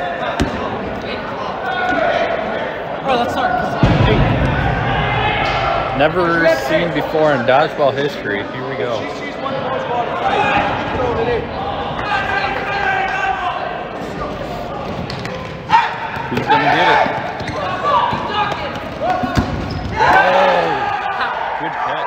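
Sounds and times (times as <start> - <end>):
players calling out: 0.0 - 22.0
balls bouncing on gym court: 14.9 - 20.2.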